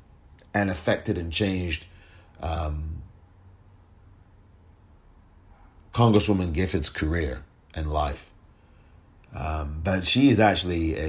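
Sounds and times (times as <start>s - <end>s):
man speaking: 0.5s - 3.1s, 5.9s - 8.4s, 9.3s - 11.0s.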